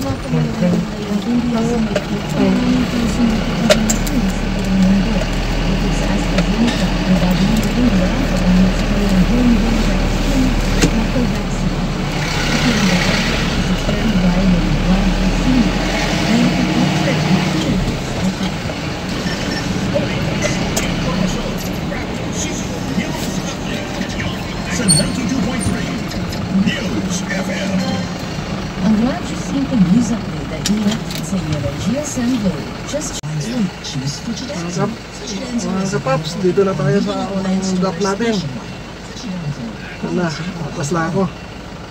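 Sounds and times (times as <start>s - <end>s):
people talking: 0.0s - 41.4s
van engine humming: 0.0s - 41.9s.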